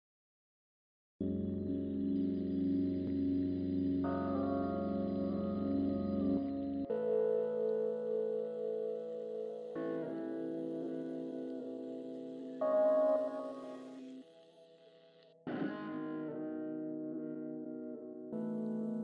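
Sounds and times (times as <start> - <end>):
electronic music with held chords: 1.2 - 19.0.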